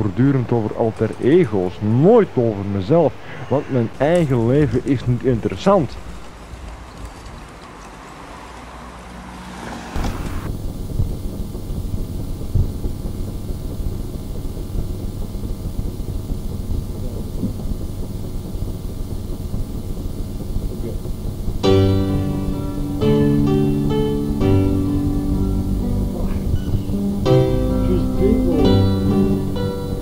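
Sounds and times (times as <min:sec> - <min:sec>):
low mechanical rumble: 0:00.0 - 0:30.0
wind buffeting microphone: 0:26.2 - 0:27.0.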